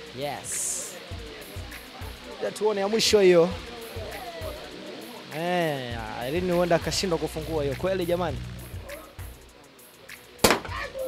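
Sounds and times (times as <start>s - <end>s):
champagne cork popping: 10.4s - 10.8s.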